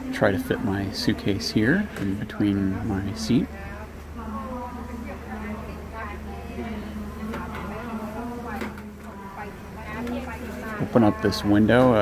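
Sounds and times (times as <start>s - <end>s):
chatter of several voices: 0.0s - 12.0s
steady low hum: 0.0s - 12.0s.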